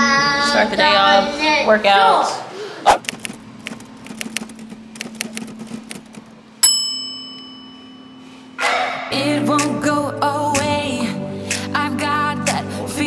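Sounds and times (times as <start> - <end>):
bright bell ding: 6.6 - 8.4
music with singing voice: 9.1 - 13.0.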